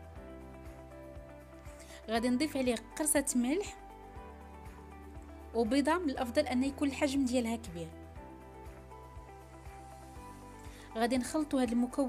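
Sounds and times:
soft music with steady beat: 0.0s - 12.0s.

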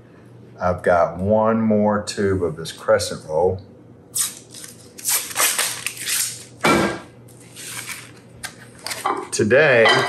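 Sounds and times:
paper wrapper rustling: 4.2s - 6.6s, 7.3s - 9.1s.

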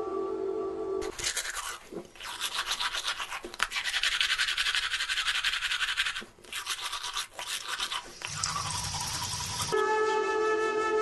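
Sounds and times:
toothbrush scrubbing teeth: 1.0s - 9.8s.

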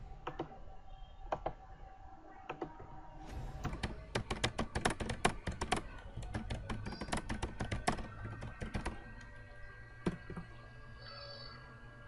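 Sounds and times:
typing on computer keyboard: 3.7s - 9.3s.

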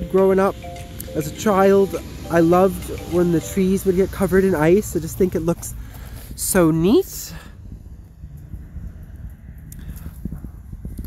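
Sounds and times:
wind rumble on microphone: 3.9s - 11.0s.

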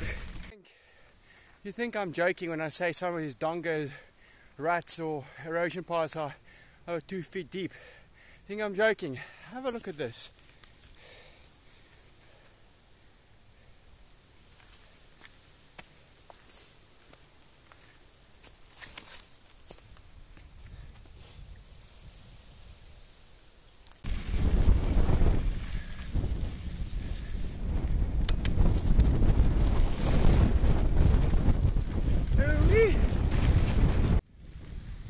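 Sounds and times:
wind buffeting microphone: 24.0s - 35.0s.

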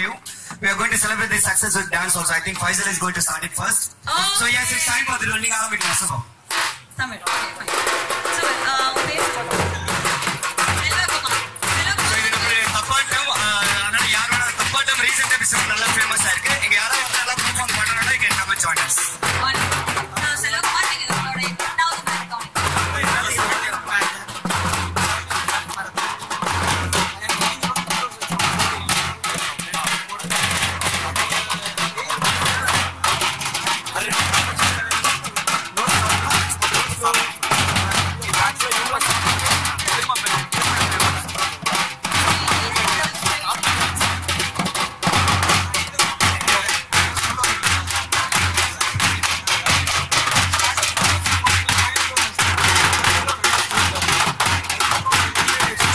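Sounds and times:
drum troupe playing fast rhythm: 0.0s - 55.9s.

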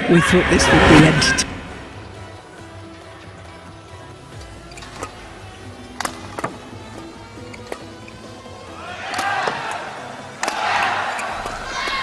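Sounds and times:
background music: 0.0s - 12.0s
racket hitting shuttlecock: 9.0s - 11.9s.

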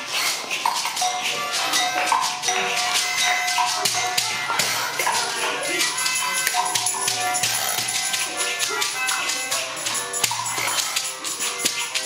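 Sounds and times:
hand percussion: 0.0s - 12.0s
held steady band tones: 0.0s - 12.0s.

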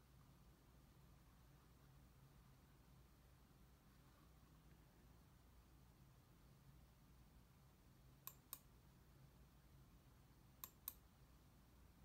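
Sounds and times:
computer mouse button clicking: 8.2s - 8.7s, 10.6s - 11.0s.

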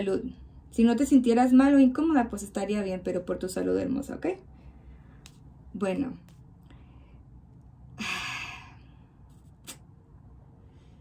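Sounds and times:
woman sighing: 7.9s - 8.9s.

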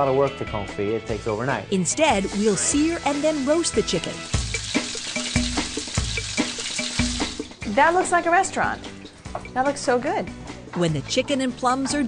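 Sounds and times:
background music with bass: 0.0s - 12.0s
chicken sizzling in frying pan: 2.2s - 7.7s.

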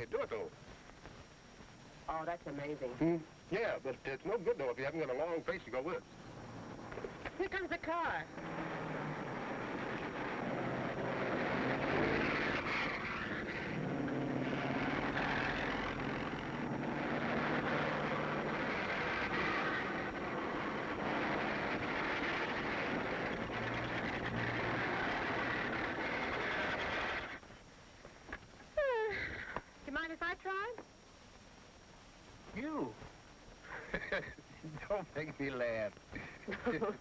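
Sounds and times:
cars passing on road: 8.1s - 27.4s.

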